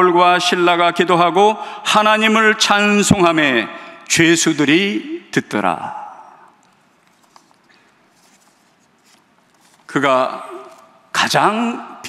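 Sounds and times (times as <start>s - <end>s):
man speaking: 9.9s - 12.0s.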